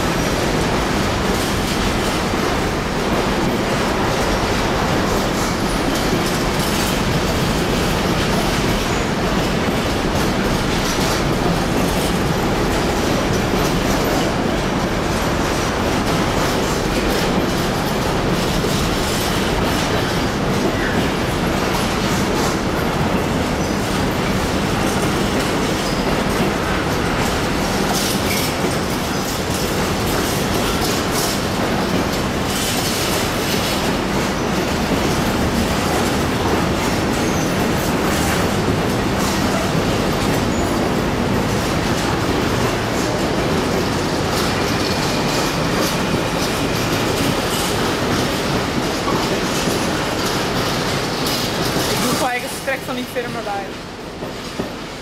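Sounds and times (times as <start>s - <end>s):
train wheels rumbling on rail: 0.0s - 55.0s.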